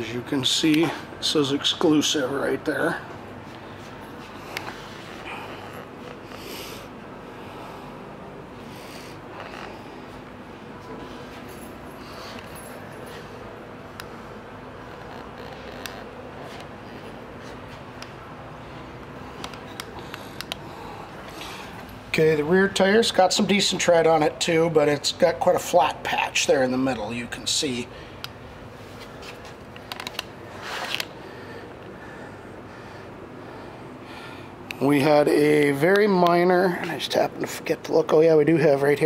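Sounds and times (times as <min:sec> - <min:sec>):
faint ventilation hum: 0:00.0 - 0:39.0
handling clicks and rustles: 0:09.3 - 0:22.2, 0:28.2 - 0:31.2.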